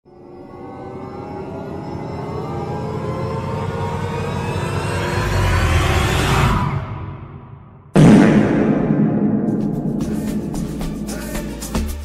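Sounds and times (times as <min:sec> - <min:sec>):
cinematic riser tones: 0:00.1 - 0:11.6
deep bass boom: 0:07.9 - 0:11.5.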